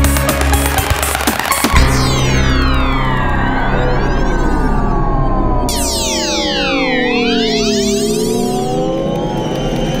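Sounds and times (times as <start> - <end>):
synthesizer music: 0.0 - 10.0
high synth sweep: 1.7 - 10.0.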